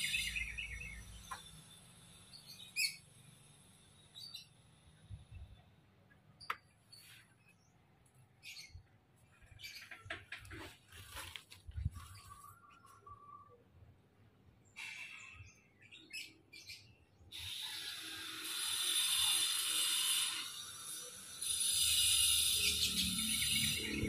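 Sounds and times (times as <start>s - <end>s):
songbird chirping and singing: 0.0s - 3.1s.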